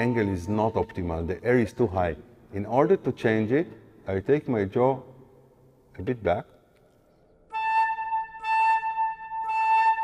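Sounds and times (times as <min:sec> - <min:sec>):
flute high note: 0:07.5 - 0:10.0.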